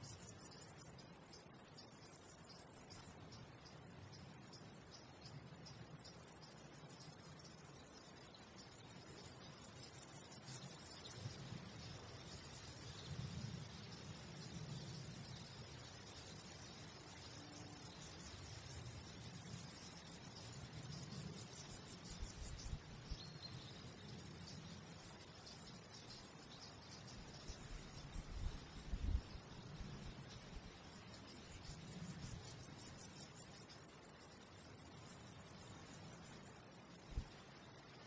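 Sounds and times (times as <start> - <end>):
insect chirping: 0.0 - 38.0.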